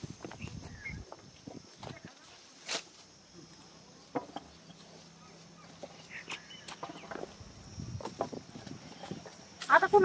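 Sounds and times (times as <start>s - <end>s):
footsteps on dirt ground: 0.0s - 10.0s.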